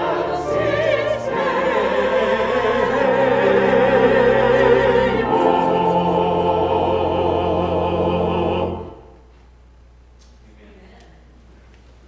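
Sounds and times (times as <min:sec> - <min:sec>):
choir singing: 0:00.0 - 0:09.2
organ bass notes: 0:00.0 - 0:09.2.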